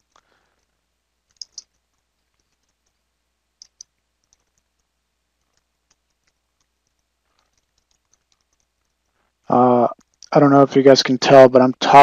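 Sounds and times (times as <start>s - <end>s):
faint keyboard keystrokes: 1.3s - 3.0s, 3.6s - 9.2s.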